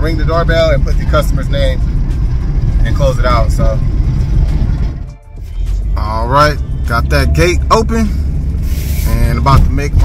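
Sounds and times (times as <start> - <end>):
van engine and tyres rumbling: 0.0 - 10.0.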